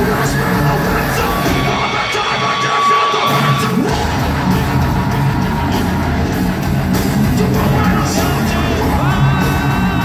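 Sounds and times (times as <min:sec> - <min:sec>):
live heavy metal band playing: 0:00.0 - 0:10.0.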